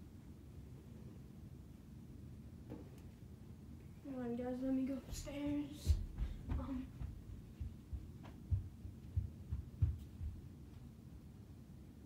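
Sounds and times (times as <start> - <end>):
footsteps climbing stairs: 5.1 - 10.8.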